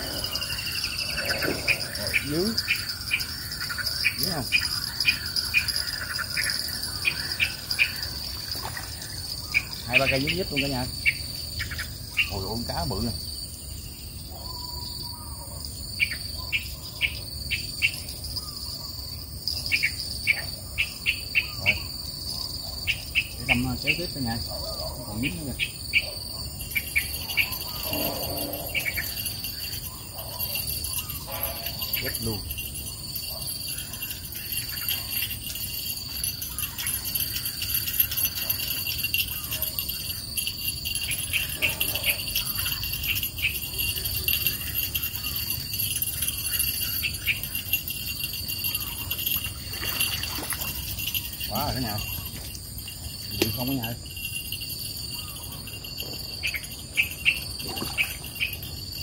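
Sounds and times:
insects droning: 0:00.0 - 0:59.0.

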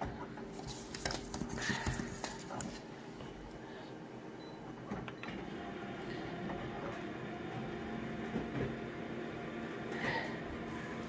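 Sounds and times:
photocopier humming: 0:00.1 - 0:11.0.

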